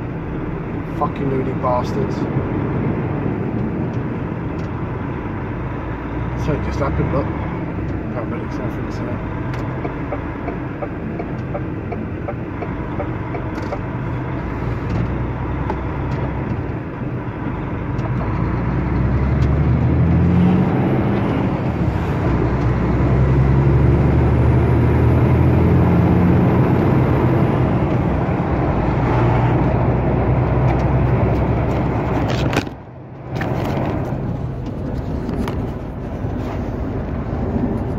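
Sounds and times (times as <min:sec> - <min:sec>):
road noise: 0:00.0 - 0:37.9.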